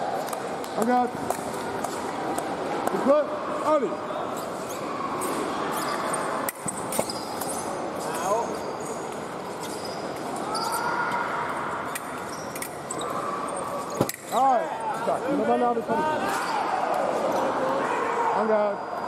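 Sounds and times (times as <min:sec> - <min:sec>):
voices echoing in hall: 0:00.0 - 0:19.0.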